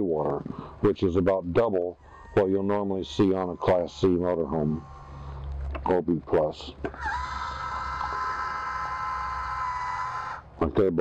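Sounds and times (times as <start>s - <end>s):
electric valve motor whine: 2.0s - 5.6s.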